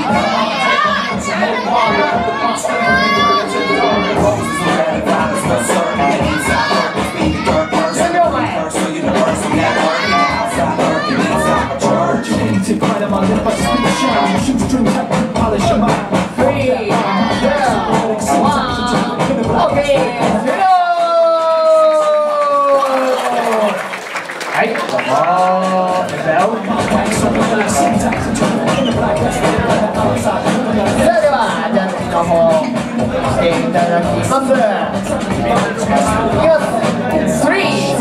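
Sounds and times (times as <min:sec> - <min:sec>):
children's voices: 0:00.0 - 0:08.5, 0:09.4 - 0:14.6, 0:16.9 - 0:20.5
music with steady beat: 0:00.0 - 0:20.7, 0:25.3 - 0:38.0
crowd shouting and cheering: 0:00.0 - 0:38.0.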